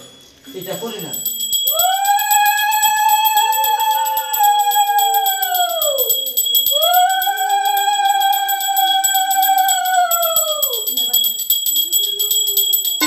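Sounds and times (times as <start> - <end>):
handbell ringing rapidly: 0.0 - 13.0.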